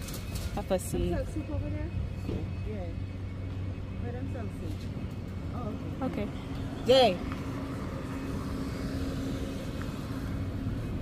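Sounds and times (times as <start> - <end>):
car driving slowly past: 1.7 - 11.0.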